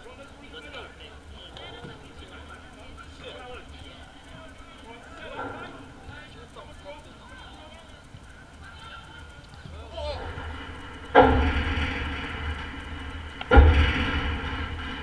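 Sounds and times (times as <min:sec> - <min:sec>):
players shouting: 0:00.0 - 0:12.5
goal frame rumbling: 0:01.1 - 0:15.0.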